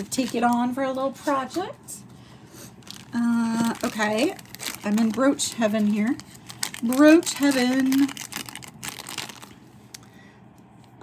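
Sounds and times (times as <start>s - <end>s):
plastic bag crinkling: 0.0s - 1.6s, 2.7s - 10.1s.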